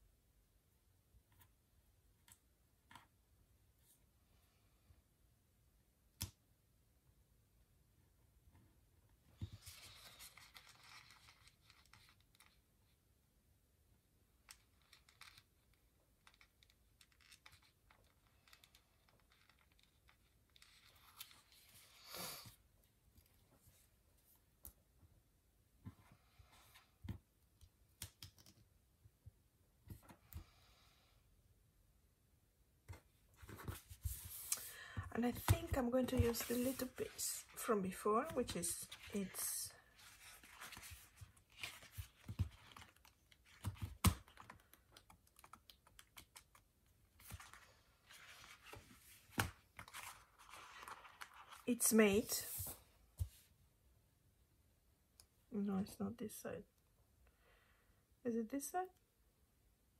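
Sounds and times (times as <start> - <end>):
paper pages rustling on table: 9.4 - 12.6, 33.4 - 46.6, 47.2 - 53.4
paper sheets rustling: 33.4 - 44.6.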